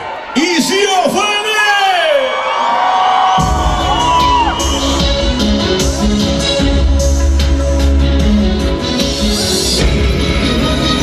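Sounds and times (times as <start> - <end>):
crowd cheering and whooping: 0.0 - 6.2
live band with bass and drums: 3.4 - 11.0.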